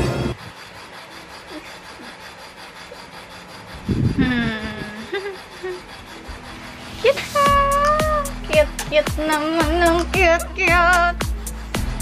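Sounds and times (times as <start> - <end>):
background music: 0.0 - 0.4, 6.8 - 12.0.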